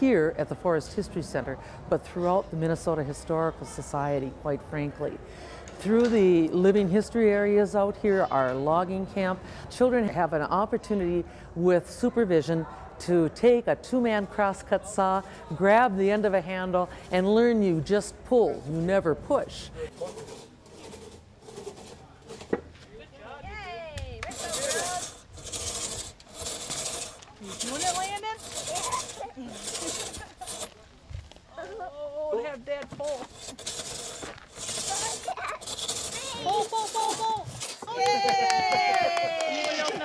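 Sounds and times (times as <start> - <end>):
crosscut saw cutting log: 24.2 - 30.8, 32.9 - 37.8
voices: 34.6 - 40.0
child's excited shout: 36.2 - 40.0.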